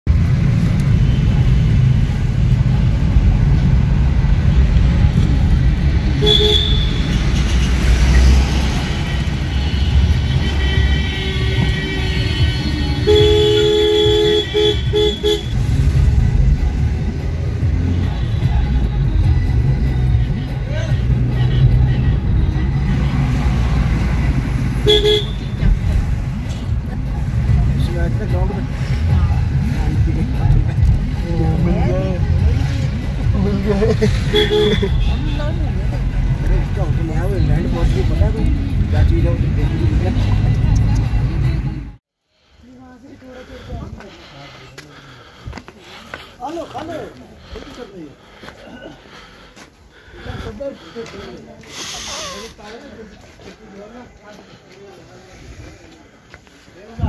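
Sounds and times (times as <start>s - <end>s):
low road rumble: 0.0s - 57.0s
car horns honking: 6.1s - 8.0s, 8.8s - 15.7s, 24.8s - 25.6s, 34.1s - 35.6s.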